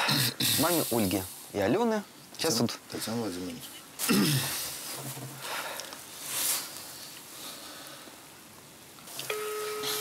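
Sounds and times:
telephone ringback beep: 9.3 - 10.0.

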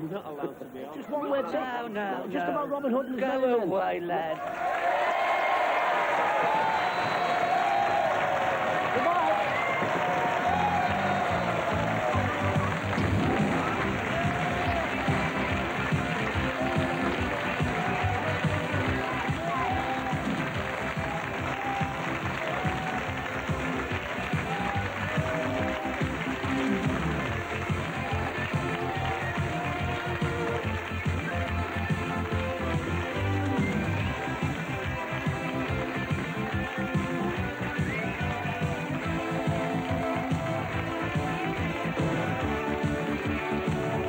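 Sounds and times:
studio audience applause: 4.3 - 44.0
theme music with steady beat: 7.5 - 44.0.

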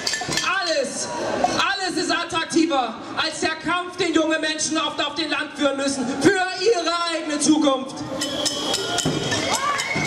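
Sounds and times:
man speaking into microphone: 0.4 - 8.0.

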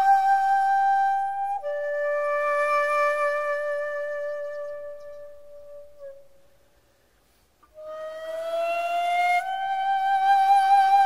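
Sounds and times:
bamboo flute notes: 0.0 - 6.8, 7.6 - 11.0.

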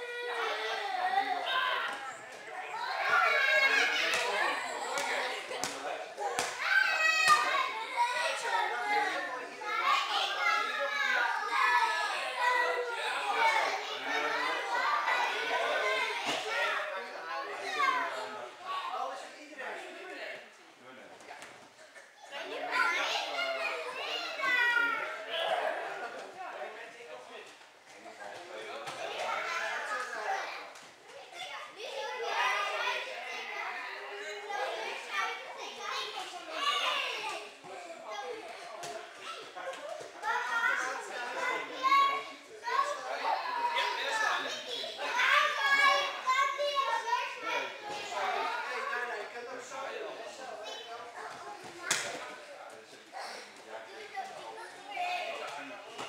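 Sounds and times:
children chattering and calling out: 0.0 - 21.0, 21.6 - 56.0
adult voices: 0.0 - 56.0.

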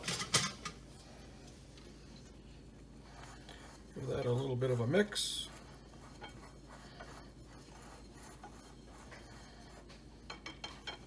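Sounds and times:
whisk scratching dry flour: 2.8 - 11.0
whisk clicking on bowl: 4.4 - 11.0.

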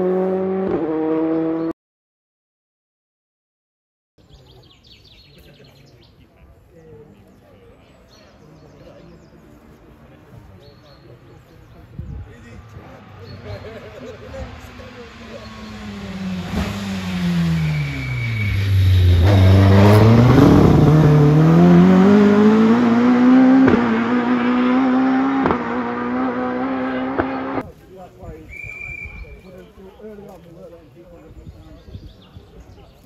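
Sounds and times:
rally car engine: 0.0 - 1.7, 12.3 - 27.6.

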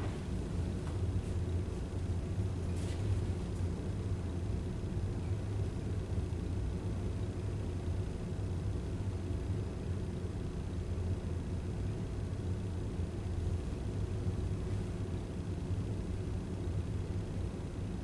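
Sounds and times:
low hum and rumble: 0.0 - 18.0.

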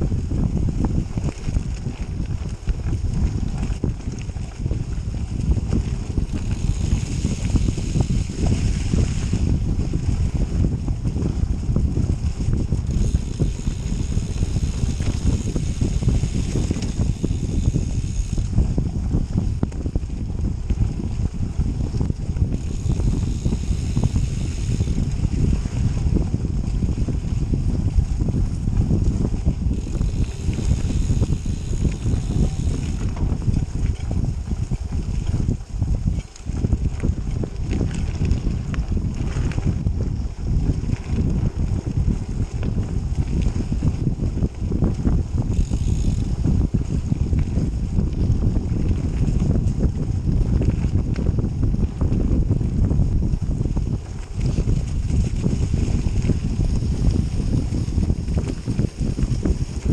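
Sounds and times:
bike tyre and trail noise: 0.0 - 59.9
wind buffeting microphone: 0.0 - 59.9.

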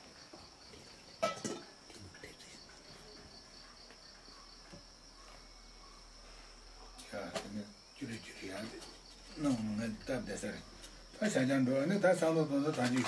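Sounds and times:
cricket trilling: 0.0 - 13.0.

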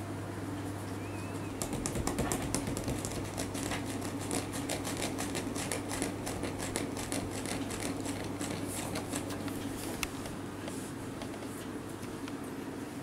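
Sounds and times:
steady low hum: 0.0 - 13.0
fingers scratching bamboo mat: 1.6 - 10.0.

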